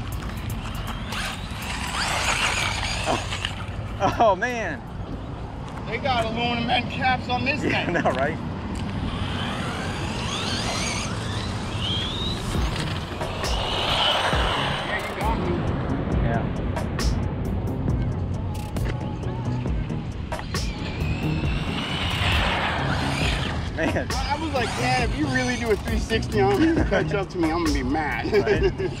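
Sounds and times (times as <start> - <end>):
electric rc buggies whining on gravel: 0.0 - 4.1, 8.7 - 15.3, 20.4 - 29.0
background music: 12.4 - 29.0.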